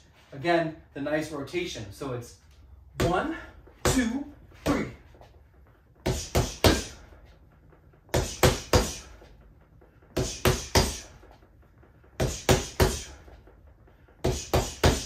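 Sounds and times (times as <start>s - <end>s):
punching bag thuds: 6.0s - 7.1s, 8.1s - 9.2s, 10.1s - 11.2s, 12.1s - 13.3s, 14.2s - 15.0s.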